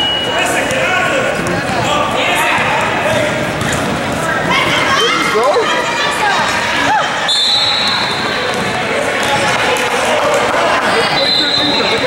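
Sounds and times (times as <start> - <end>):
voices calling out in gym: 0.0 - 12.0
basketball dribbling: 8.0 - 9.6.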